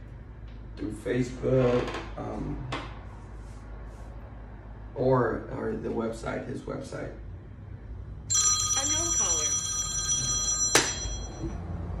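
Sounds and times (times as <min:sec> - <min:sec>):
electronic ringing tone: 0:08.3 - 0:12.0.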